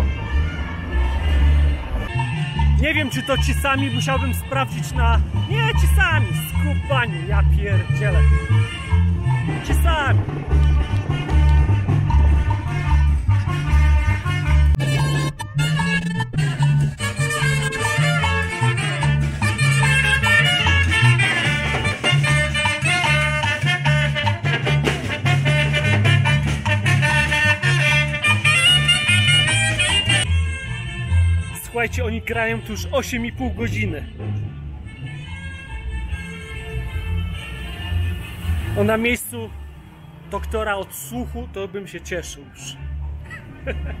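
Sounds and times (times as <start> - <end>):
brass band playing dance music: 0.0 - 31.9
rhythmic bass line: 2.0 - 31.8
saxophone: 10.5 - 31.6.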